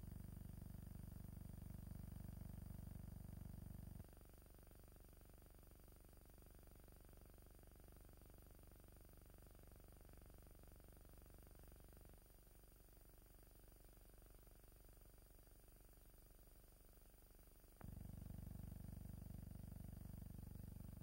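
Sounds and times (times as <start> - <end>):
faint low hum: 0.0 - 21.0.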